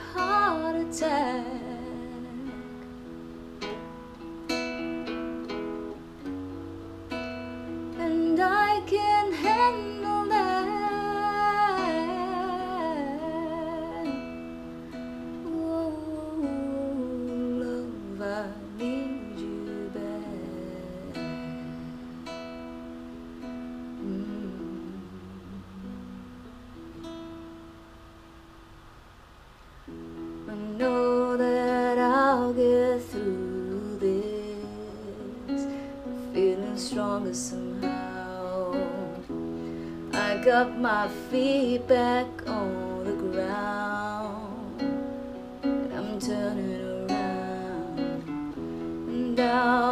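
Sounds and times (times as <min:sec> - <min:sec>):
acoustic guitar ballad: 0:00.0 - 0:49.9.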